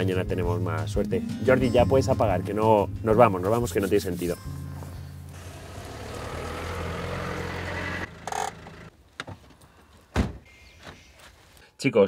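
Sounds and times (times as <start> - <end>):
car engine hum: 5.3 - 9.0.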